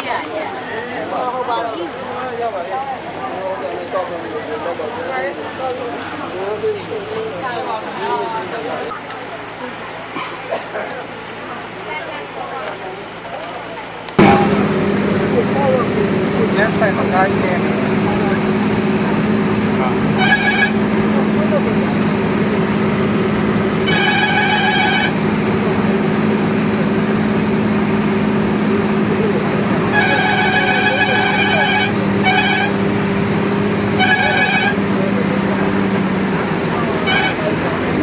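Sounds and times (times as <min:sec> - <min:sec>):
vehicle engine hum: 0:00.0 - 0:38.0
vehicle horn honking: 0:20.1 - 0:21.1, 0:23.8 - 0:25.3, 0:29.8 - 0:32.9, 0:33.9 - 0:35.0, 0:37.0 - 0:37.6.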